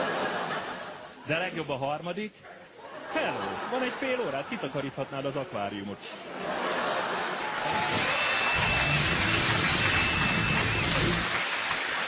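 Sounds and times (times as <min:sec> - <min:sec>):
audience applauding: 0:06.9 - 0:12.0
long high whistle: 0:07.7 - 0:11.4.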